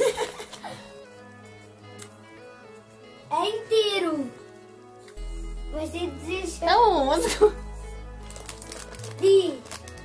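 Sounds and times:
background music of held notes: 0.0s - 10.0s.

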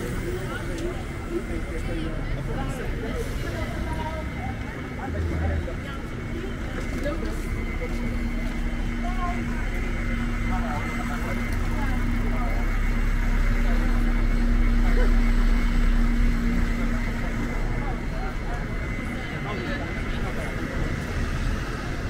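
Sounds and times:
bus engine rumble: 0.0s - 22.0s
passers-by chattering: 0.0s - 22.0s
steady hum: 0.0s - 22.0s.

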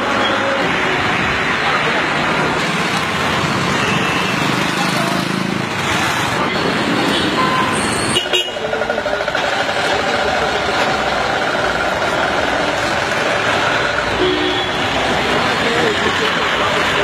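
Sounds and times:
motorbikes and cars passing: 0.0s - 17.0s.

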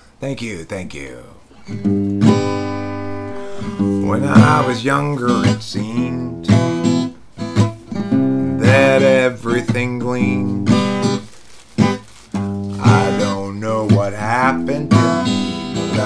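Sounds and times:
strummed acoustic guitar: 1.6s - 16.0s
man singing: 3.9s - 6.7s, 8.6s - 10.8s, 12.6s - 16.0s.

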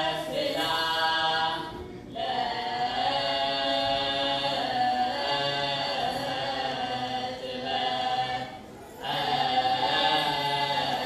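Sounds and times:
choir chanting a hymn: 0.0s - 11.0s.

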